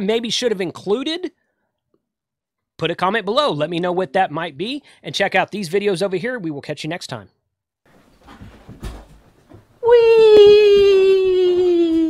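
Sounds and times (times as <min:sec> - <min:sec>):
office chair rustling: 0:07.9 - 0:09.8.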